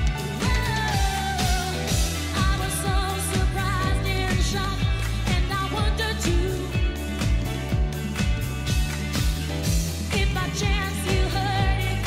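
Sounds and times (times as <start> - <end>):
woman singing lead: 0.0 - 7.6, 9.9 - 12.0
band playing dance beat: 0.0 - 12.0.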